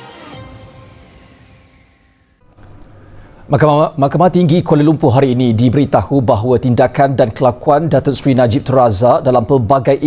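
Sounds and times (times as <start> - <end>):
news theme music: 0.0 - 2.6.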